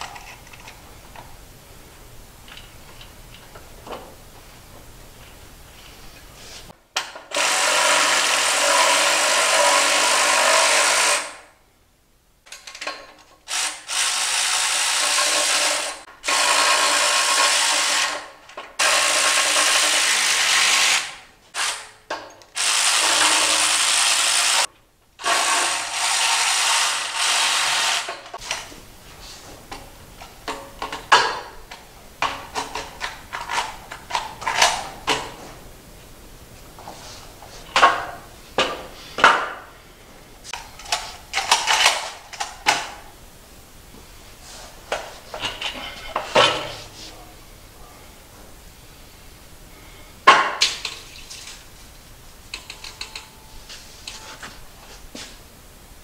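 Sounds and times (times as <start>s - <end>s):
power drill driving bolts: 7.0s - 11.4s, 12.7s - 28.7s
metal clamps clicking and knocking: 52.5s - 53.4s.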